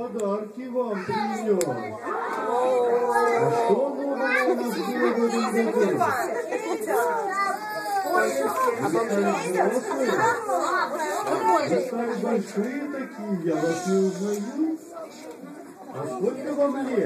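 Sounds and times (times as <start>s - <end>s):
small children talking and calling out: 0.8s - 17.0s.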